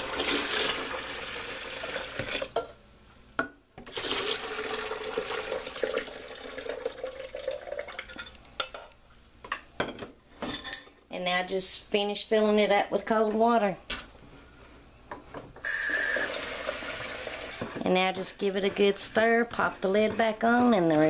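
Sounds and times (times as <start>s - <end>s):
tea pouring into plastic pitchers: 3.9s - 8.1s.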